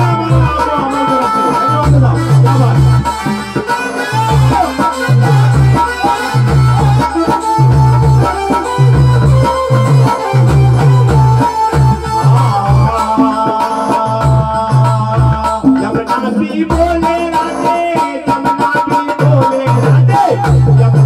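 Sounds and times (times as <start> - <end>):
electronic keyboard melody: 0.0 - 20.6
devotional music over loudspeaker: 0.0 - 21.0
dholak drum: 0.0 - 21.0
heavy bass drum beat: 0.0 - 21.0.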